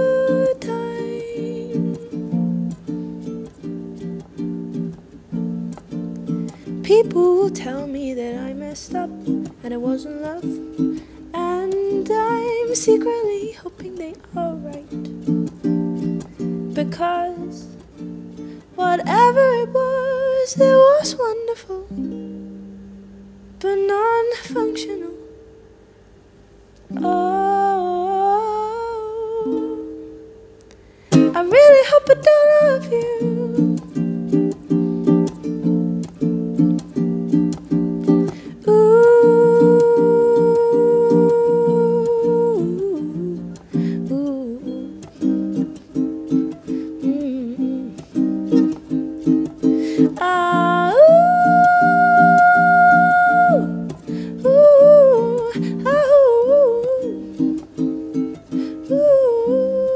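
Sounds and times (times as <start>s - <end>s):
woman singing wordless melody: 0.0s - 25.7s, 26.8s - 59.9s
ukulele chord strummed: 0.0s - 26.1s, 26.8s - 59.9s.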